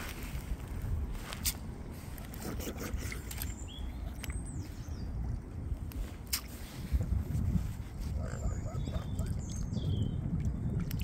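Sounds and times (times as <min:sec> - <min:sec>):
small splashes: 0:10.4 - 0:11.0.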